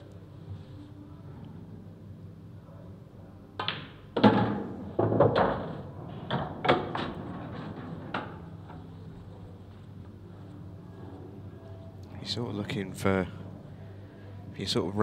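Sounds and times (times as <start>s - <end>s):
cue striking ball: 3.6s - 8.5s
pool balls knocking: 3.6s - 8.9s.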